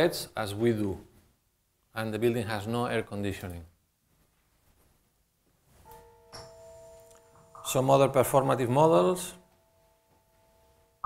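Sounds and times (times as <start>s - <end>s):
soft chime-like chord: 5.8s - 11.0s.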